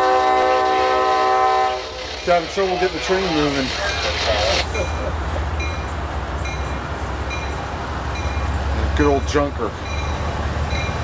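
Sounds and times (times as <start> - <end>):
diesel locomotive engine rumble: 0.0 - 11.0.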